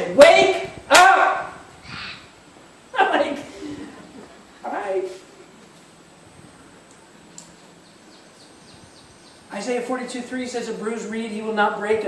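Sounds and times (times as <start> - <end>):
bird chirping: 7.2 - 9.8.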